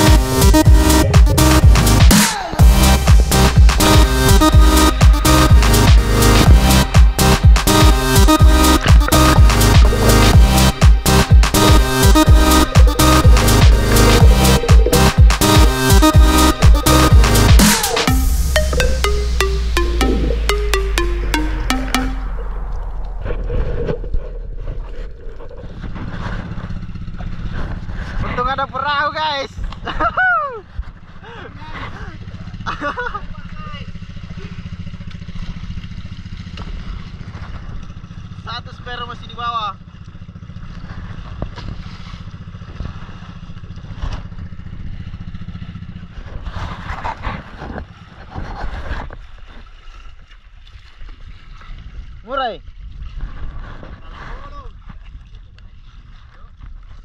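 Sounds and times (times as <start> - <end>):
water splashing: 0.0 - 28.0
boat engine running: 0.0 - 50.3.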